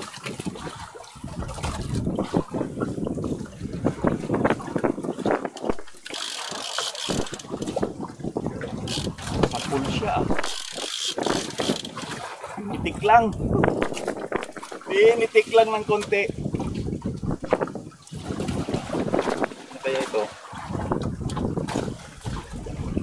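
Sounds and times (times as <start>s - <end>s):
knocking and rattling of boat gear: 0.0s - 23.0s.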